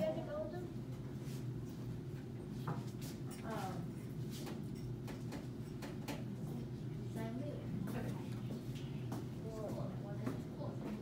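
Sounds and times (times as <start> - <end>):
steady low hum: 0.0 - 11.0
quiet speech: 6.5 - 11.0.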